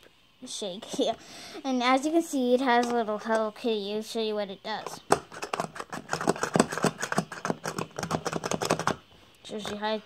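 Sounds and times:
plastic toy clicking: 4.8s - 9.0s.

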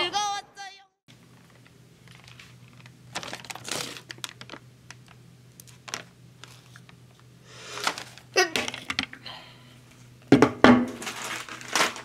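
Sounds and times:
steady low hum: 1.1s - 12.0s
snack bag crinkling: 1.3s - 8.9s, 11.0s - 12.0s.

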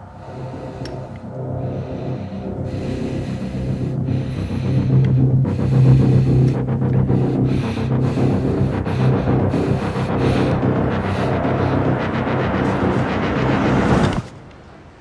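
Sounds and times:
low sustained drone: 0.0s - 14.3s.

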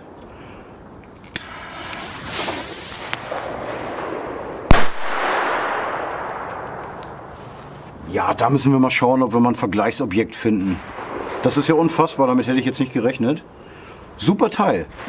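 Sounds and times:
short hiss: 1.4s - 3.6s
firecracker bang: 1.4s - 7.4s.

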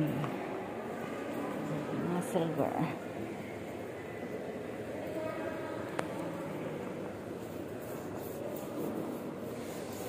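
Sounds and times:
faint distant voices: 0.0s - 10.0s
shopping mall din: 0.0s - 10.0s.

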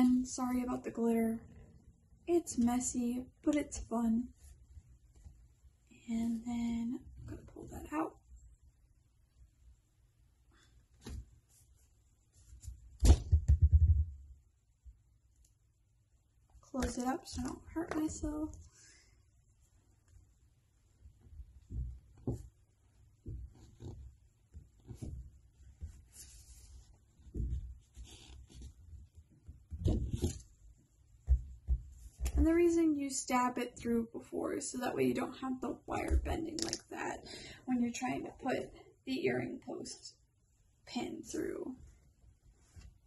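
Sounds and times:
hands thumping a tabletop: 13.0s - 14.2s, 31.2s - 32.3s.

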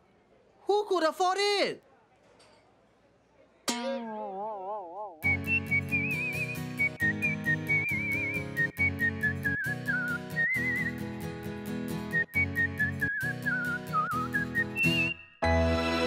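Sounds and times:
bouncy backing music: 3.7s - 16.0s
whistled melody with vibrato: 5.2s - 11.2s, 11.9s - 16.0s.

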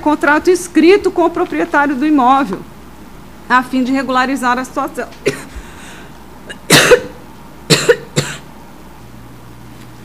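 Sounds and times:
person coughing: 5.2s - 5.6s, 6.5s - 8.5s.

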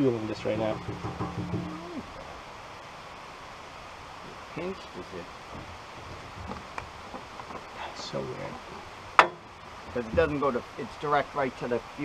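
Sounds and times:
faint outdoor background hiss: 0.0s - 12.0s
person speaking: 1.5s - 2.1s.

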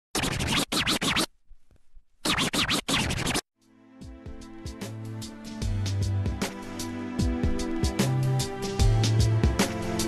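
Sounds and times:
record scratching: 0.1s - 1.3s, 2.2s - 3.4s.

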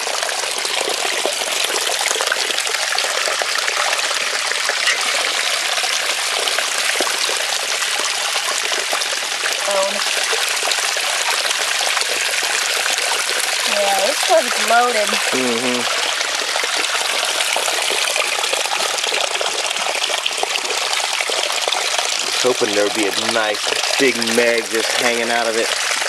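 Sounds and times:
creek water splashing over rocks: 0.0s - 26.0s.

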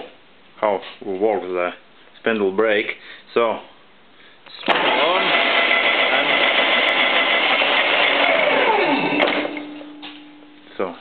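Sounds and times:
milling machine spindle whine: 4.7s - 9.4s
low steady hum: 8.6s - 11.0s.

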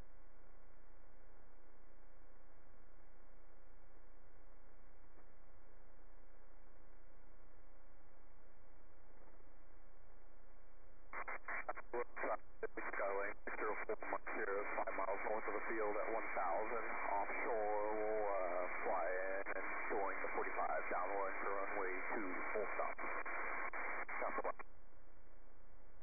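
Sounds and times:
person talking over radio: 11.2s - 24.6s.

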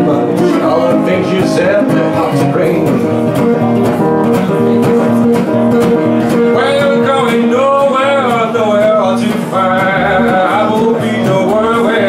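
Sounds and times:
resonator guitar strumming blues: 0.0s - 12.0s.

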